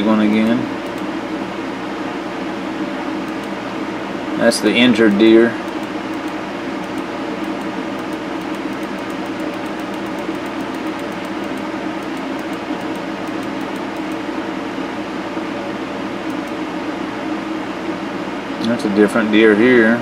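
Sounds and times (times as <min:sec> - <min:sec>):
steady mechanical hum: 0:00.0 - 0:20.0.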